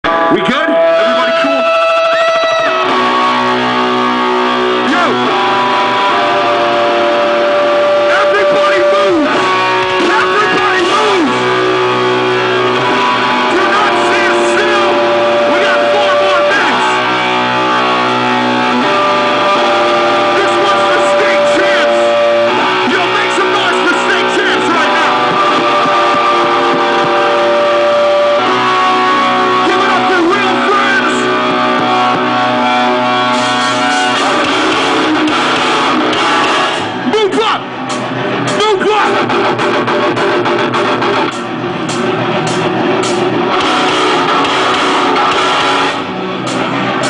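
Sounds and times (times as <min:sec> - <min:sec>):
singer's voice: 0:00.0 - 0:03.4, 0:07.8 - 0:11.6, 0:13.0 - 0:33.1
distorted electric guitar chord: 0:00.0 - 0:47.0
loud rock band playing: 0:00.0 - 0:47.0.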